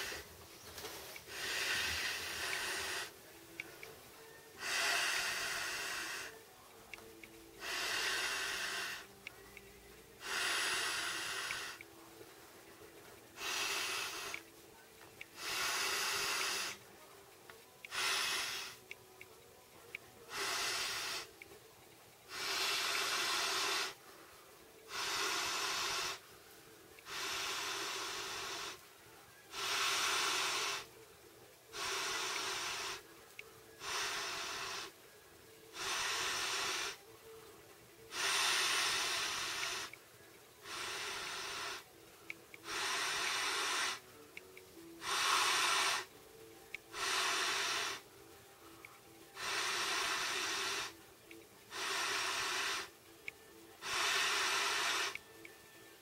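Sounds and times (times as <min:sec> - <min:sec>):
breaths blown through air bed valve: 0:00.0 - 0:00.3, 0:01.2 - 0:03.8, 0:04.5 - 0:06.4, 0:07.6 - 0:09.2, 0:10.2 - 0:11.9, 0:13.4 - 0:14.5, 0:15.2 - 0:16.9, 0:17.8 - 0:19.0, 0:20.3 - 0:21.5, 0:22.3 - 0:24.1, 0:24.9 - 0:26.3, 0:27.0 - 0:28.9, 0:29.5 - 0:31.0, 0:31.7 - 0:33.1, 0:33.8 - 0:35.0, 0:35.7 - 0:37.0, 0:38.1 - 0:40.0, 0:40.6 - 0:41.9, 0:42.6 - 0:44.1, 0:45.0 - 0:46.1, 0:46.7 - 0:48.1, 0:49.3 - 0:51.0, 0:51.7 - 0:53.0, 0:53.7 - 0:55.5.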